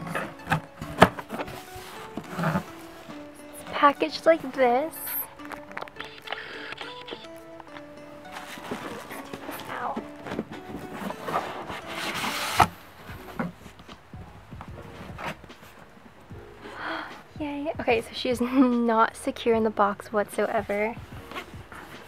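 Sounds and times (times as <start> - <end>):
cardboard box rustling and scraping: 0.0 - 5.7, 8.3 - 13.8, 14.8 - 15.8
bubble wrap rustling: 0.0 - 6.2, 7.6 - 13.8
soft background music: 0.0 - 22.0.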